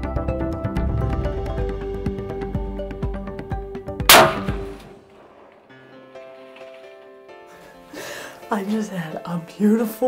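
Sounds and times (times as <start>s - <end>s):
rifle shot: 4.1s - 5.5s.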